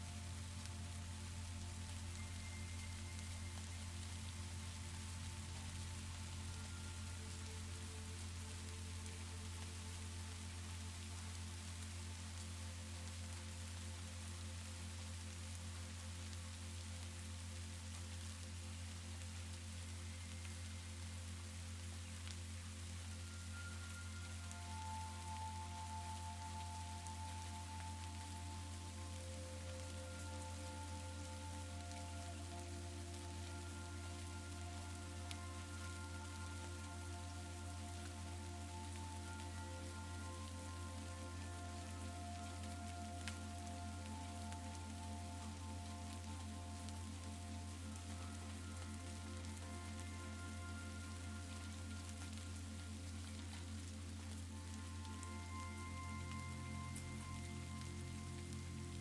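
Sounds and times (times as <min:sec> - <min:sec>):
soft ambient music over drone: 0:00.0 - 0:59.0
steady rain falling: 0:00.0 - 0:59.0.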